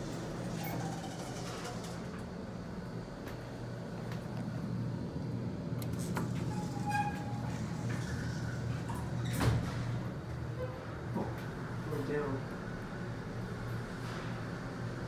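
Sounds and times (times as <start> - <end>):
elevator doors sliding shut: 0.0 - 2.4, 5.8 - 11.1.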